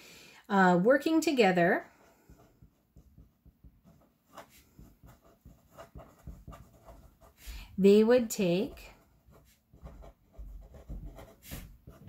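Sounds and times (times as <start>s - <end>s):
marker writing on paper: 2.0s - 12.0s.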